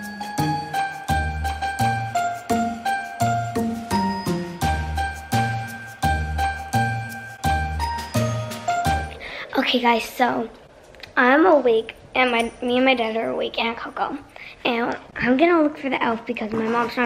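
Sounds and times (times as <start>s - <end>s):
upbeat music with chiming melody: 0.0s - 9.2s.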